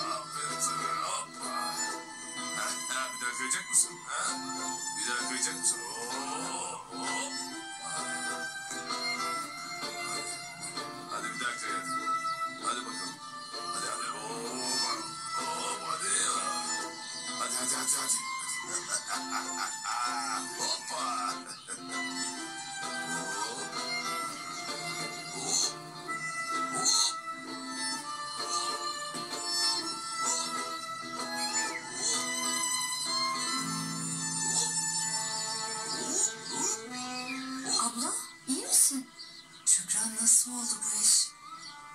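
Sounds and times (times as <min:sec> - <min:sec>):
drama soundtrack music from tv: 0:00.0 - 0:41.9
instrumental score from television: 0:00.0 - 0:41.9.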